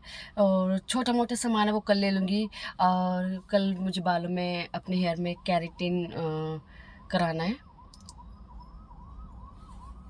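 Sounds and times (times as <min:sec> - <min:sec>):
siren yelping: 0:04.4 - 0:10.0.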